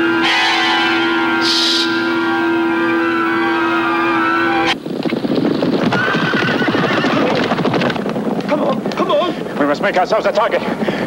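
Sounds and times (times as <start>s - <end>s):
horses galloping in harness: 4.8s - 10.5s.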